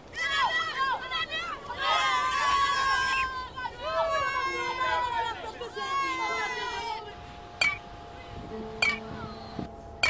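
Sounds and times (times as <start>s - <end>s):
music with held notes: 6.2s - 10.0s
metallic chiming strike: 7.0s - 10.0s.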